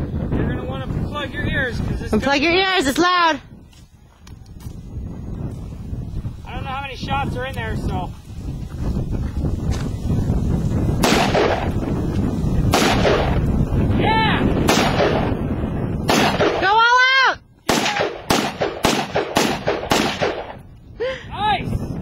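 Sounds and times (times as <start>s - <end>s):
rifle shots: 11.0s - 11.8s, 12.7s - 13.4s, 14.6s - 15.4s, 16.0s - 16.7s, 17.7s - 20.6s.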